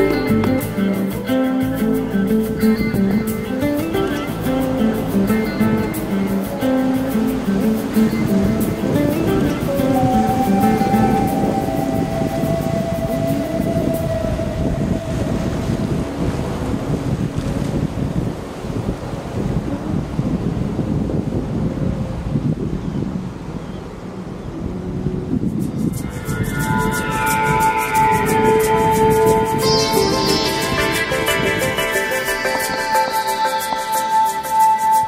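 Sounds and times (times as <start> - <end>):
background music: 0.0 - 16.8, 25.2 - 35.0
surf washing: 0.0 - 35.0
wind buffeting microphone: 0.0 - 35.0.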